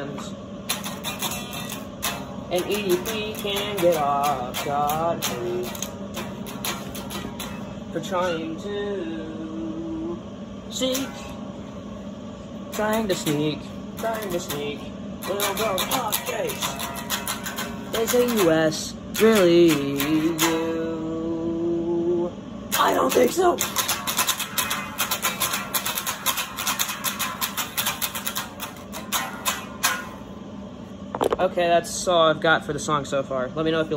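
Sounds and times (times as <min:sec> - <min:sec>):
acoustic guitar strumming: 0:00.0 - 0:11.8, 0:12.6 - 0:21.6, 0:22.7 - 0:31.4
man singing: 0:02.5 - 0:06.0, 0:07.9 - 0:10.2, 0:12.7 - 0:16.8, 0:17.9 - 0:23.4.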